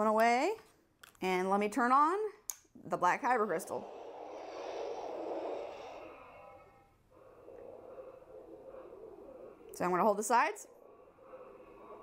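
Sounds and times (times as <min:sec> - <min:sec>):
toy whooshing hiss: 0:03.3 - 0:12.0.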